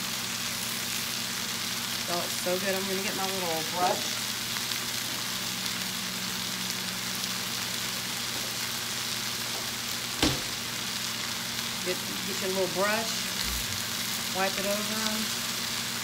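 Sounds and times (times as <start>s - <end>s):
chicken and onions sizzling in skillet: 0.0s - 16.0s
sharp knock: 10.2s - 10.5s.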